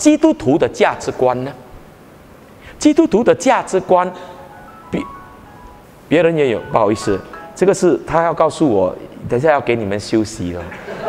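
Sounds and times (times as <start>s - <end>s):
electronic reminder chime melody: 4.3s - 8.2s.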